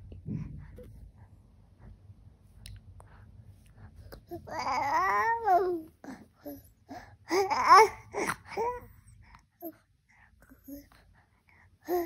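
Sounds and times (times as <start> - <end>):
baby babbling: 4.2 - 6.6, 7.3 - 8.9.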